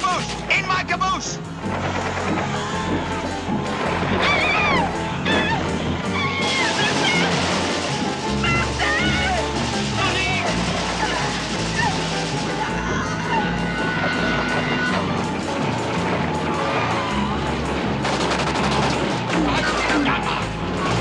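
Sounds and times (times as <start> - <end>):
dramatic film score: 0.0 - 21.0
crowd shouting and screaming: 2.1 - 18.0.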